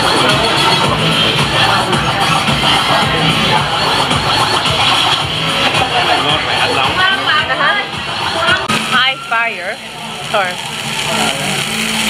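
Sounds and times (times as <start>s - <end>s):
people talking: 5.7s - 11.6s.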